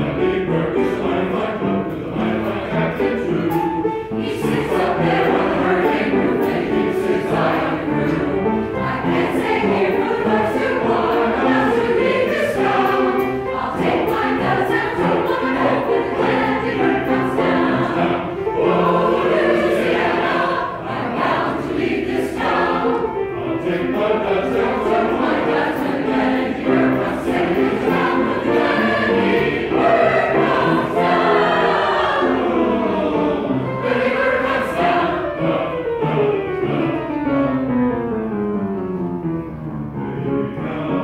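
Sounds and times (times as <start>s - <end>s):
men's choir singing: 0.0s - 37.3s, 40.2s - 41.0s.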